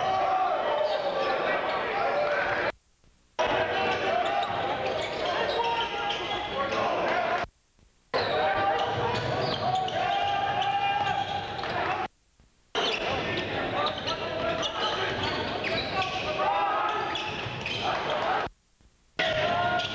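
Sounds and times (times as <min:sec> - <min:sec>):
voices and shouts: 0:00.0 - 0:02.7, 0:03.4 - 0:07.5, 0:08.2 - 0:12.1, 0:12.8 - 0:18.5, 0:19.2 - 0:19.9.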